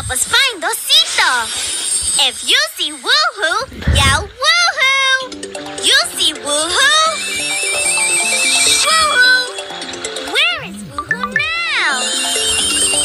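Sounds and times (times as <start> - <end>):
playful background music: 0.0 - 13.0
high twinkling shimmer: 1.3 - 3.5
high voices calling out: 5.2 - 13.0.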